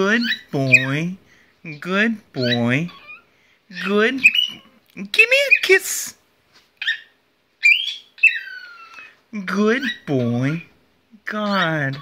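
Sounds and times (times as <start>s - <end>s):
cockatiel whistling: 6.8s - 9.1s.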